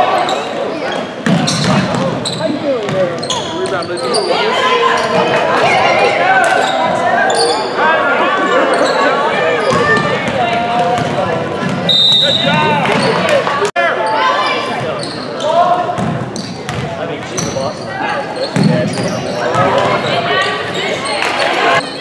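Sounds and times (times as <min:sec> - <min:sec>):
people calling out in a gym: 0:02.2 - 0:10.8, 0:11.8 - 0:15.9.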